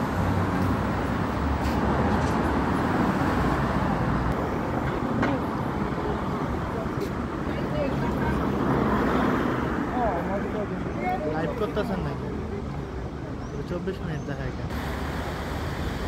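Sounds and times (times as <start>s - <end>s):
cars passing on street: 0.0s - 16.0s
faint indistinct voices: 4.4s - 14.7s.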